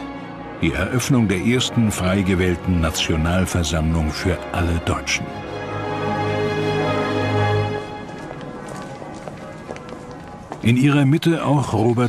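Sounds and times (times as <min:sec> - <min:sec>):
faint background music: 0:00.0 - 0:12.0
footsteps of several people: 0:05.8 - 0:12.0.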